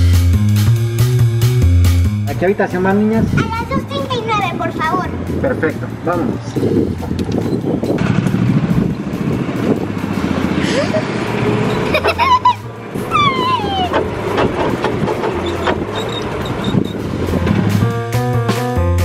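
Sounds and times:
wind on microphone: 0:02.9 - 0:11.9, 0:13.0 - 0:18.0
golf cart rumbling: 0:03.2 - 0:18.4
child's high exclamation: 0:13.1 - 0:14.0.

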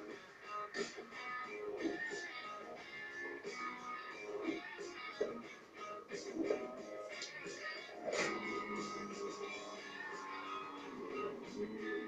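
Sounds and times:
music with voices from television: 0:00.0 - 0:12.0.

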